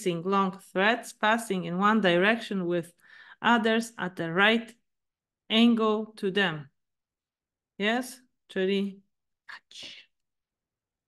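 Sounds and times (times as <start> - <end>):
woman speaking: 0.0 - 4.8, 5.5 - 6.8, 7.8 - 10.1.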